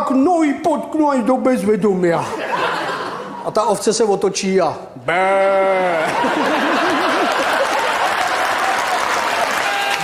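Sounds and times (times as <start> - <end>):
audience laughing: 2.2 - 3.6, 5.8 - 9.2
loud wavering laugh: 5.5 - 8.4
audience applauding: 6.2 - 10.0.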